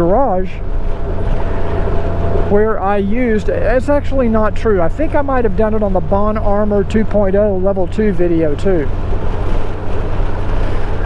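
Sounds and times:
wind and motorcycle road rumble: 0.0s - 11.0s.

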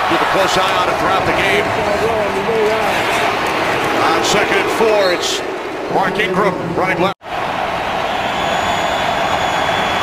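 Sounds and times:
man giving commentary: 0.0s - 7.2s
stadium crowd noise: 0.0s - 10.0s.

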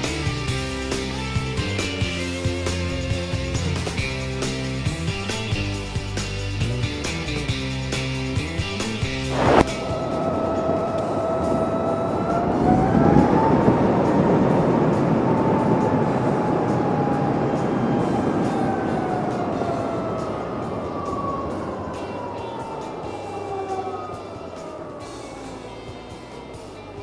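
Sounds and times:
electric motorcycle whine: 9.0s - 27.0s
wind and tyre rush: 9.0s - 27.0s.

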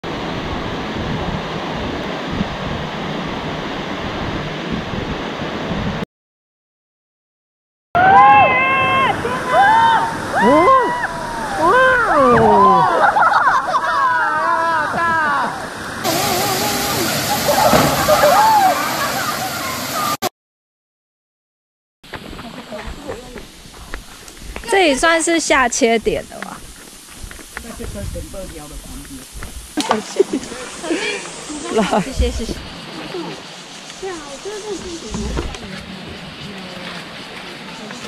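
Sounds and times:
voices calling out: 8.0s - 20.2s, 29.8s - 38.0s
waterfall rushing: 8.0s - 20.2s, 22.6s - 38.0s.

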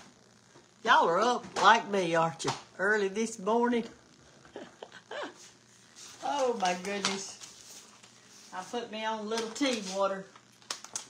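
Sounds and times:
woman laughing softly: 4.4s - 5.6s.

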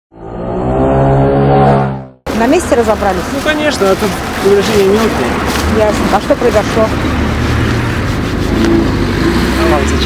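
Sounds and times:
vehicle engine running: 1.7s - 10.0s.

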